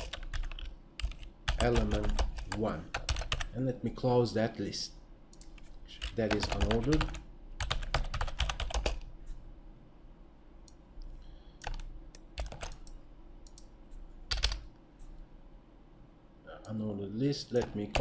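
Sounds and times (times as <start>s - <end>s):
computer keyboard typing: 0.0s - 3.5s, 5.3s - 9.1s, 11.6s - 13.7s, 14.3s - 14.7s, 17.6s - 18.0s.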